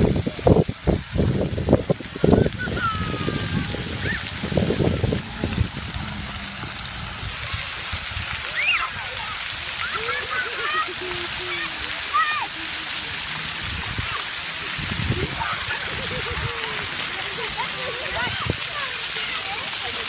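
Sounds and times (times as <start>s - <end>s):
water jets spraying on pavement: 0.0s - 20.0s
children calling and squealing: 2.0s - 20.0s.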